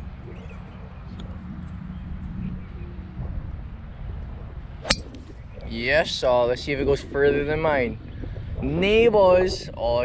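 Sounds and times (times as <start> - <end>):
golf driver hitting ball: 4.8 - 5.2.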